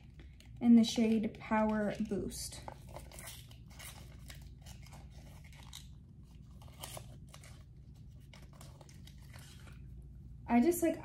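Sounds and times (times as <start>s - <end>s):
packaging rustling and clicking: 1.7s - 9.8s.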